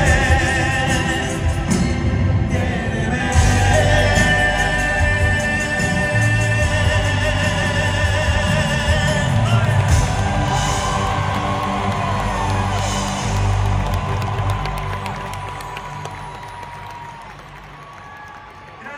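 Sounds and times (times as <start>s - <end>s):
live band playing: 0.0s - 16.8s
crowd cheering and whooping: 9.4s - 18.9s.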